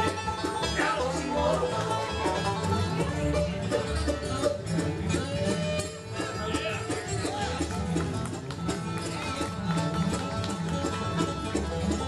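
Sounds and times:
banjo picking lead: 0.0s - 12.0s
guitar rhythm: 0.0s - 12.0s
upright bass: 0.0s - 12.0s.

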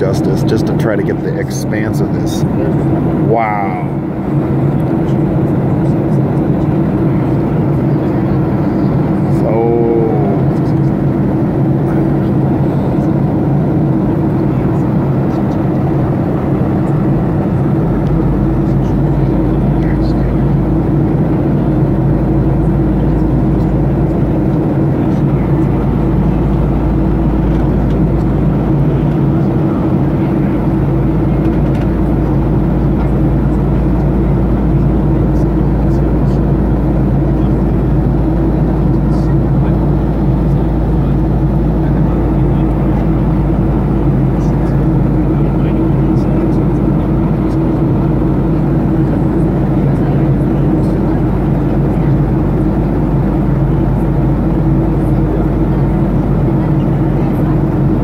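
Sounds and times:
aircraft engine drone: 0.0s - 58.0s.

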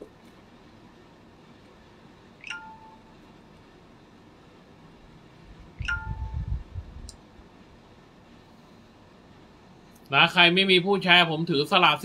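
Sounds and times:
electronic two-note chime: 5.8s - 6.5s.

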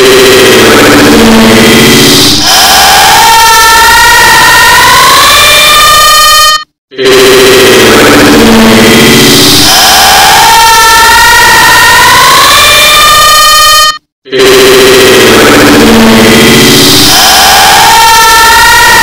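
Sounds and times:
distorted overlapping male yells: 2.4s - 5.1s, 9.6s - 12.4s.

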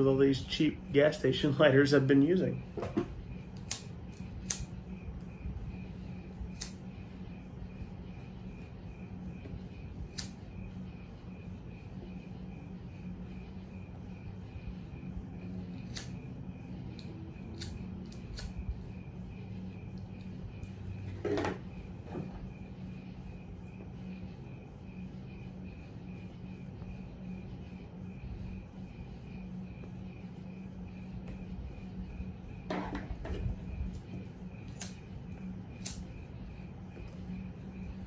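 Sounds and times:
faint pulsing high chirp: 0.0s - 32.7s, 33.4s - 38.0s
faint steady hum: 0.0s - 38.0s
lighter clicks: 15.9s - 16.2s.

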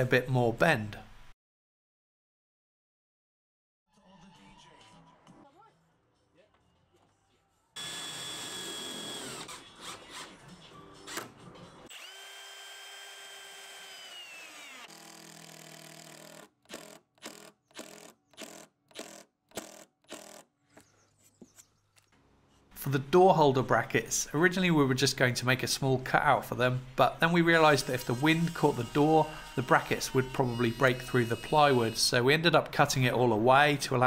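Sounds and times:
drill driving screws into wood: 7.8s - 10.3s, 11.9s - 20.5s.

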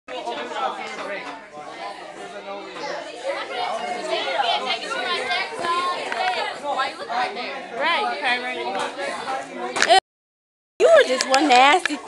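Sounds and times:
young voices chattering: 0.1s - 10.0s, 10.8s - 12.0s.

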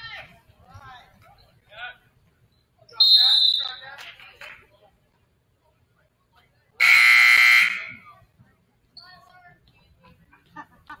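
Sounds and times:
scoreboard buzzer: 6.8s - 7.9s.

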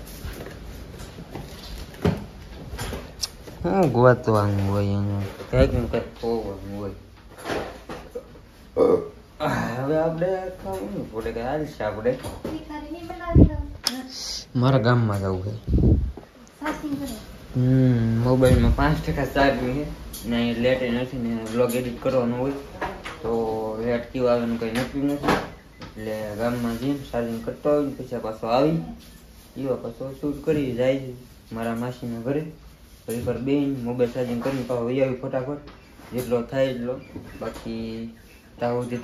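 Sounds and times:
man speaking: 3.6s - 7.0s, 14.2s - 15.8s
man talking: 3.6s - 7.0s, 14.3s - 15.8s.

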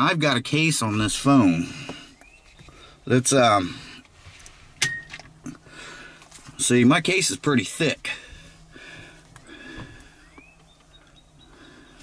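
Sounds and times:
low steady hum: 0.0s - 12.0s
phone handling clicks and rustles: 4.0s - 5.6s.

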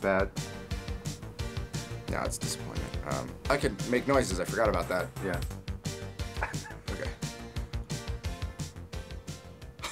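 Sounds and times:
background music with steady beat: 0.0s - 9.9s.

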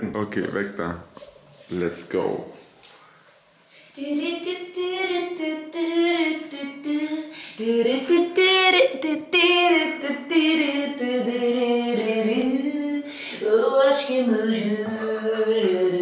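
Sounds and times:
woman singing unaccompanied: 3.9s - 16.0s.

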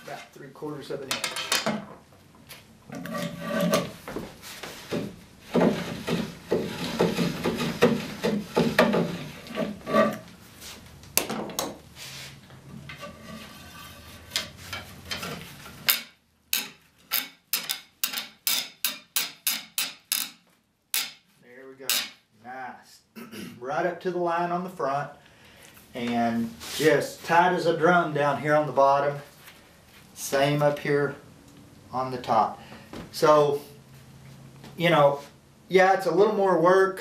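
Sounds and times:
wood scraping on wood: 0.0s - 0.4s, 2.9s - 10.8s, 12.0s - 20.4s.

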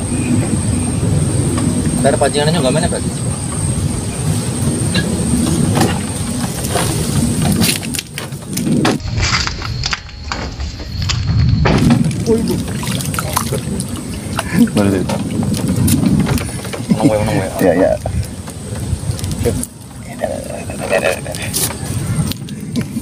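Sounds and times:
steady low rumble: 0.0s - 23.0s
people talking indistinctly: 2.0s - 3.2s, 12.2s - 18.4s, 19.3s - 21.7s
fish splashing in water: 12.1s - 16.7s.

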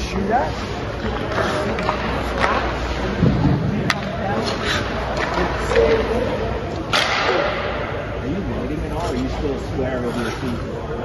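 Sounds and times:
muffled voices: 0.0s - 11.0s.

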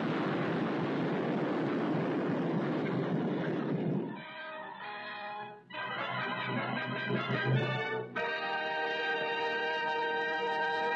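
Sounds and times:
explosion rumble: 0.0s - 4.2s.

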